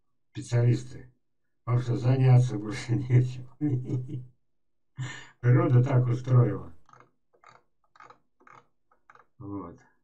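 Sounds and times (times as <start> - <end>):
mouse scroll wheel clicks: 6.9 - 9.3.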